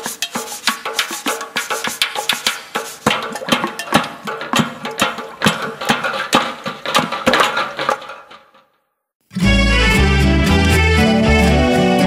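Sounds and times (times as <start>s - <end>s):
drum beaten in steady rhythm: 0.0s - 7.4s
rattles shaking: 0.0s - 8.7s.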